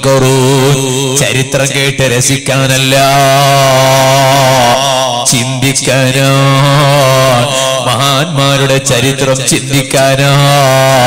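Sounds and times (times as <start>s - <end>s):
man chanting through microphone: 0.0s - 11.0s.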